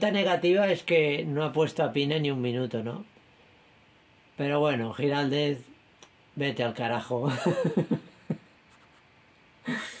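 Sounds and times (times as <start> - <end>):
man laughing: 7.2 - 8.6, 9.6 - 10.0.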